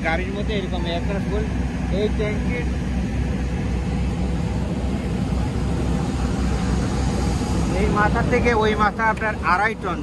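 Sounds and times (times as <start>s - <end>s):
aircraft engines running: 0.0s - 10.0s.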